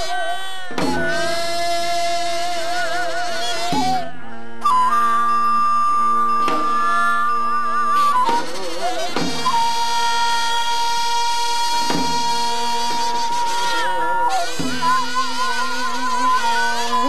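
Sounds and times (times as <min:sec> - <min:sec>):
wind instrument high notes: 0:00.0 - 0:17.0
drum strokes: 0:08.0 - 0:17.0.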